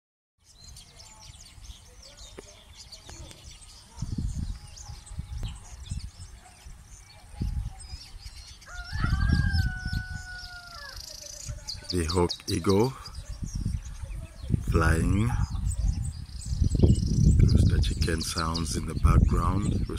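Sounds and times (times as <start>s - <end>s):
small birds chirping: 0.4s - 19.9s
wind rumble on microphone: 0.5s - 19.9s
rooster crowing: 8.7s - 11.1s.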